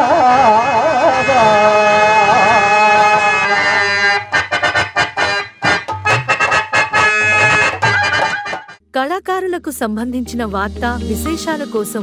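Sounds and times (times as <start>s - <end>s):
harmonium playing short notes: 1.5s - 8.8s.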